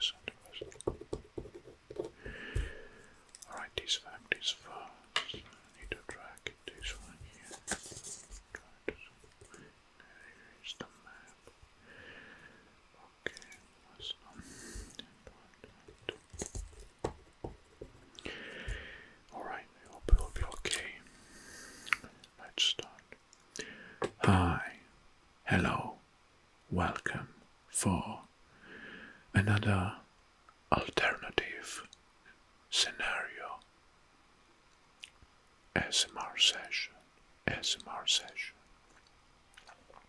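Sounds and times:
man whispering: 0:00.0 - 0:00.8, 0:02.4 - 0:11.5, 0:13.0 - 0:16.5, 0:18.3 - 0:21.2, 0:21.8 - 0:24.9, 0:25.5 - 0:26.0, 0:26.7 - 0:28.3, 0:29.3 - 0:30.1, 0:30.7 - 0:32.0, 0:32.7 - 0:33.7, 0:35.8 - 0:38.6.

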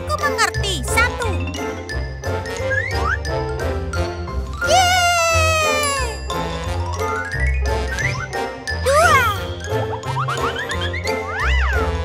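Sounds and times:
upbeat children's music: 0:00.0 - 0:12.0.

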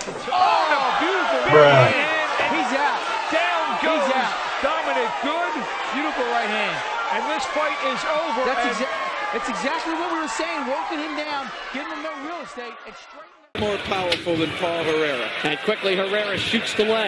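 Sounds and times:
crowd shouting and yelling: 0:00.0 - 0:17.0.

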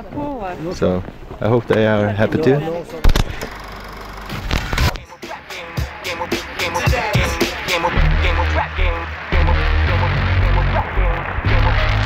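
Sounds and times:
music: 0:04.3 - 0:12.0
noisy wash: 0:04.4 - 0:12.0.

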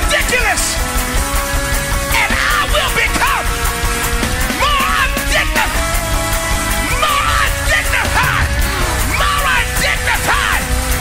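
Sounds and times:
fast gospel church band music: 0:00.0 - 0:11.0
voices yelling: 0:06.8 - 0:10.8.

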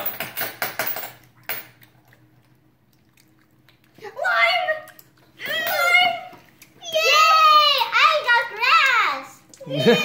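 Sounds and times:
chewing jelly beans: 0:01.2 - 0:05.5.

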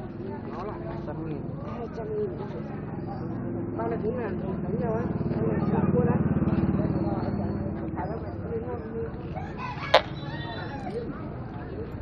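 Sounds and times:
voices in street: 0:00.0 - 0:12.0
small motorbike engine running: 0:02.6 - 0:11.7.

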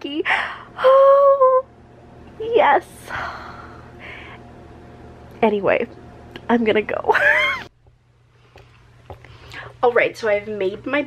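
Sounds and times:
woman's squealing laugh: 0:07.1 - 0:07.7.

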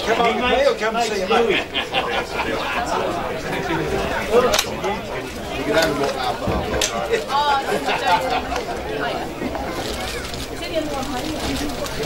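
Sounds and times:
indistinct chatter of spectators: 0:00.0 - 0:12.0.

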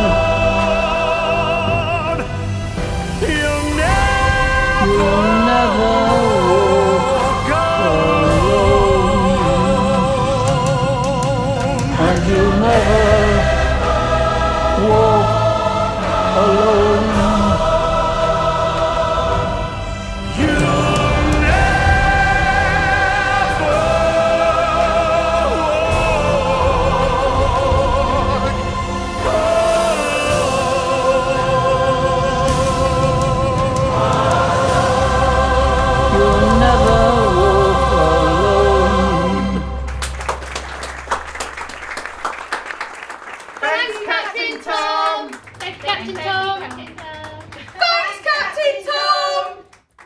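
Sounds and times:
large choir singing a ballad: 0:00.0 - 0:40.2.

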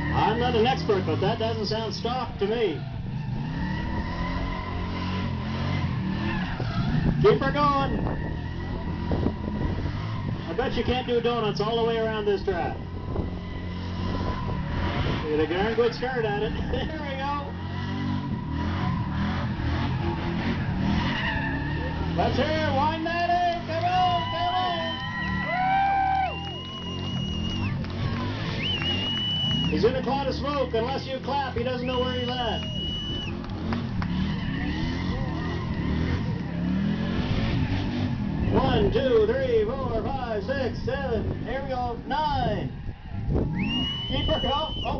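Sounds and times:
engine running hard: 0:00.0 - 0:44.9
tires squealing: 0:00.0 - 0:44.9.

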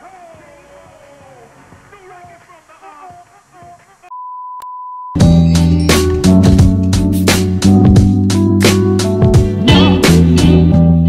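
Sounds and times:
funky music with heavy bass: 0:05.2 - 0:11.0.

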